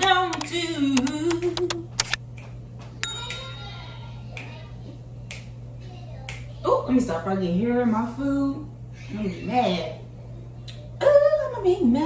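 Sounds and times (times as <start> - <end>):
sharp click: 0.3 - 2.2.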